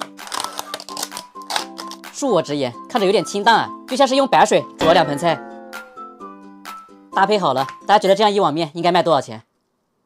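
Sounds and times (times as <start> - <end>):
plastic lid clicking and crackling: 0.0 - 2.0
background music: 0.0 - 8.7.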